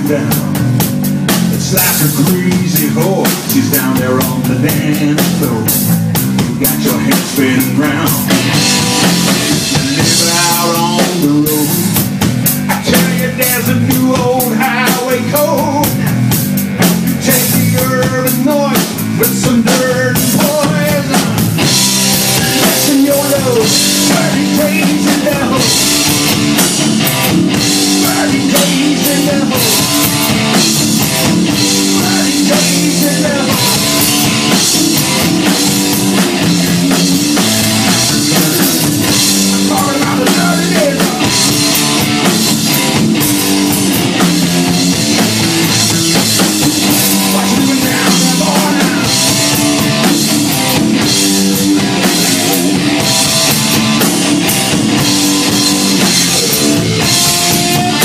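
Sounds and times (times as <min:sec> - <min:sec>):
drum kit: 0:00.0 - 0:58.0
low bass notes: 0:00.0 - 0:58.0.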